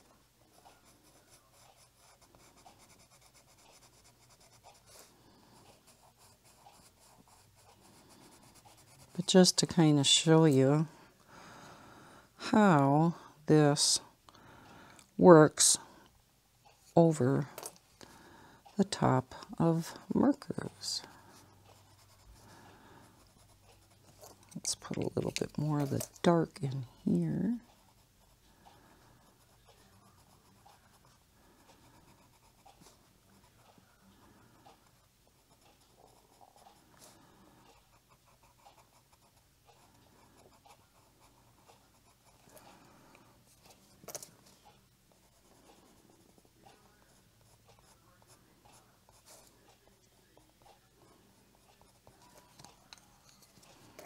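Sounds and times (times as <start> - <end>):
colored pencil scratching on paper: 0.0 - 10.9, 18.8 - 54.0.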